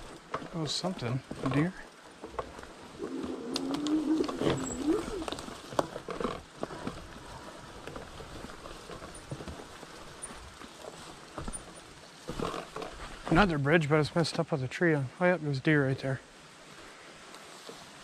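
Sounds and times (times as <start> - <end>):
bike knocks and rattles: 0.0 - 2.8, 4.2 - 13.4
bike tyres rolling over dirt: 0.0 - 14.5, 16.0 - 18.0.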